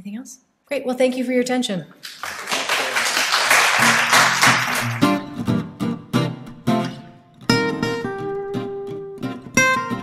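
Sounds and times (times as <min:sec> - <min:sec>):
audience applauding: 0:02.0 - 0:05.4
acoustic guitar music: 0:03.7 - 0:10.0.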